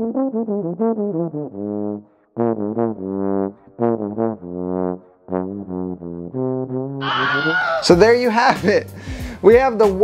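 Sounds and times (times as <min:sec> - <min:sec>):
muted trombone tune: 0:00.0 - 0:07.1.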